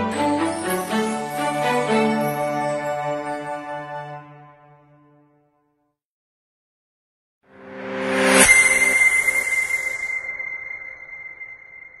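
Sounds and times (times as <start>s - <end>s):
high ringing tone: 8.0s - 12.0s.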